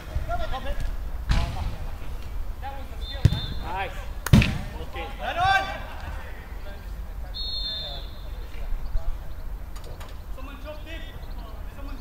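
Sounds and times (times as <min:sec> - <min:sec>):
players shouting: 0:02.7 - 0:08.6
football kick thuds: 0:03.1 - 0:04.8.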